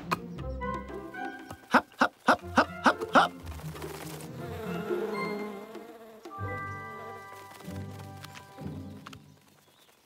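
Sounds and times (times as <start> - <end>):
background music: 0.0 - 9.8
cartoon bee wings buzzing: 2.5 - 7.8.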